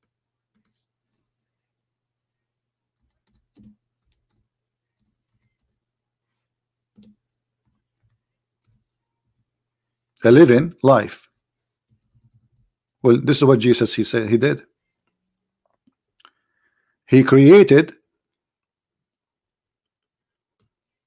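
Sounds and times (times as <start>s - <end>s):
computer keyboard clicks: 3.0s - 4.4s, 6.9s - 8.8s, 11.9s - 12.7s.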